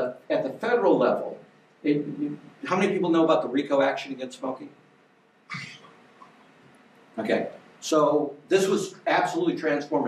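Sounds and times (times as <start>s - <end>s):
person coughing: 5.5s - 5.8s.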